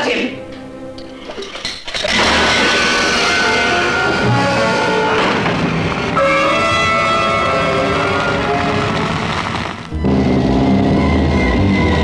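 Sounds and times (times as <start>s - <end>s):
trailer soundtrack music: 0.3s - 12.0s.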